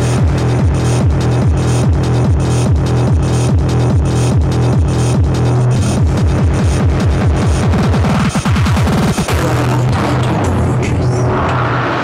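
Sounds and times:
kick drums dropping in pitch: 0.0 - 9.7
held low bass tone: 0.0 - 12.0.

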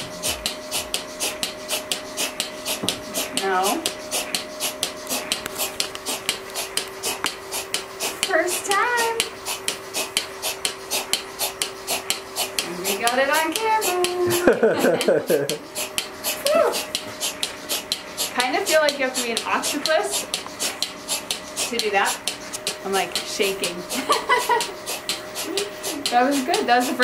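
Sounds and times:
milking machine pulsator clicks: 0.0 - 27.0
vacuum hum: 0.0 - 27.0
person making vocal sounds: 16.4 - 16.9.

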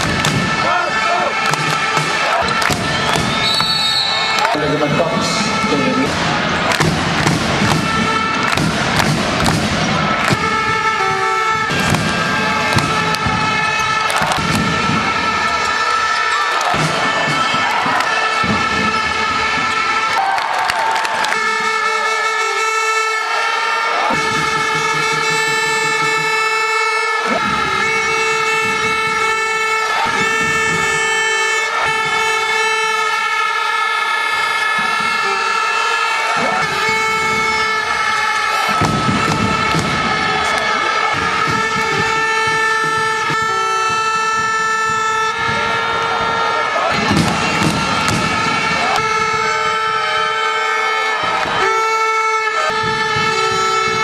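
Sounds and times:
knocks from basketball game: 0.0 - 22.4, 23.4 - 54.0
air horn blasts: 0.0 - 54.0
arena crowd noise: 0.0 - 54.0.

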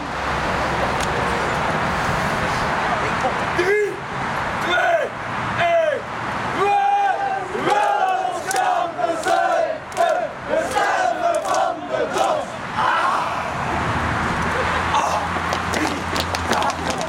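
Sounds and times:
group shouting a chant: 6.6 - 13.7
sharp claps: 8.0 - 11.7, 15.4 - 17.0.

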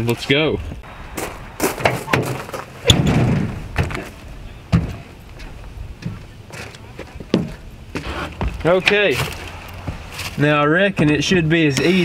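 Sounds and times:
knocks and thumps on truck bed: 1.6 - 5.1, 7.3 - 7.6.

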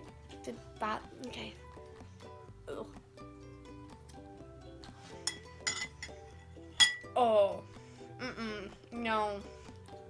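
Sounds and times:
background music with held notes: 0.0 - 10.0
metal spoon clinking glass bowl: 5.2 - 7.2.

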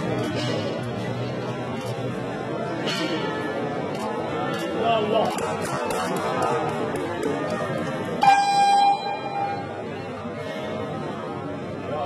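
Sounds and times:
hall background noise: 0.0 - 12.0.

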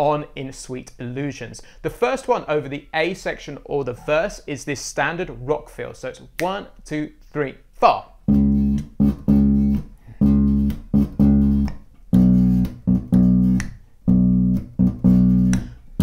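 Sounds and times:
electric bass groove: 8.2 - 16.0.

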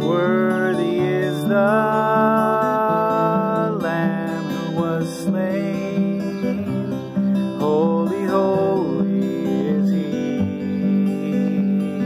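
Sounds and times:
man singing: 0.0 - 12.0
strummed acoustic guitar: 0.0 - 12.0.

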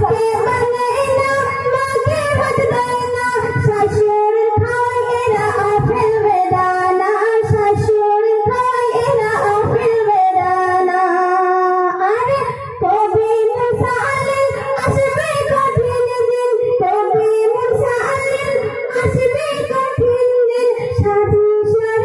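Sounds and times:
woman singing through pa: 0.0 - 22.0.

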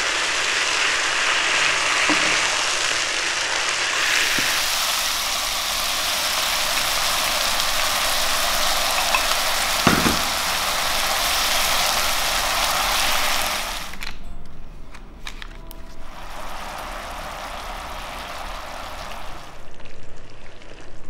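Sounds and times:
chicken sizzling in oil: 0.0 - 14.0, 16.0 - 21.0.

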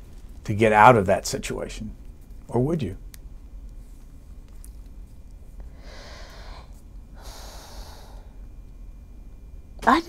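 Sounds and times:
person breathing: 5.6 - 8.4.

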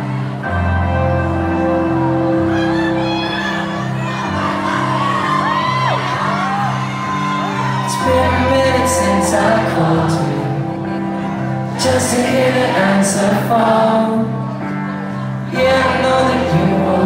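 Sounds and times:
crowd whooping and screaming: 0.0 - 13.1.

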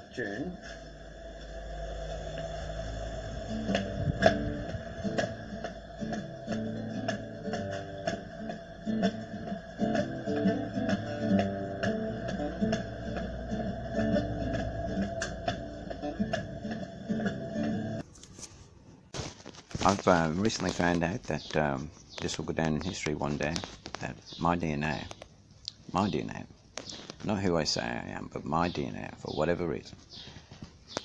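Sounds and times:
classical guitar strummed: 3.8 - 14.5.

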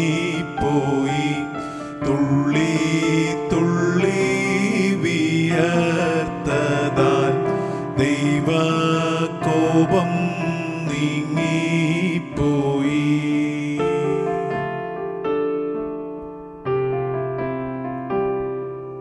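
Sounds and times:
man singing a hymn: 0.0 - 14.8
keyboard accompaniment: 0.0 - 19.0.

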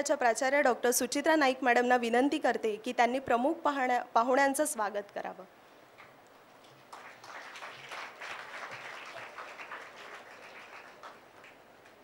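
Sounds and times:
many hands clapping: 6.0 - 12.0.

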